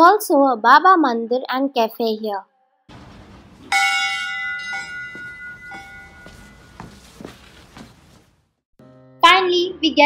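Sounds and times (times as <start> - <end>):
temple bell ringing: 2.9 - 7.2.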